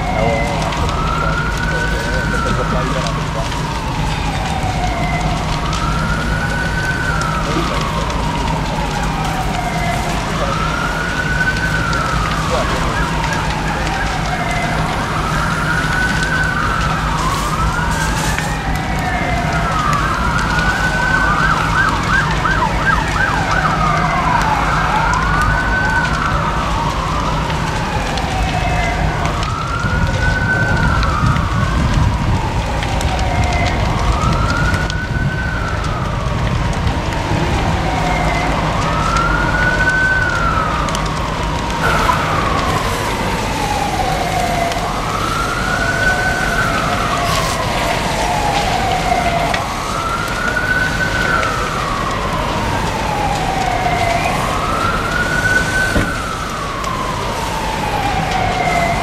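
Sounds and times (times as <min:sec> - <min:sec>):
emergency sirens wailing: 0:00.0 - 0:59.0.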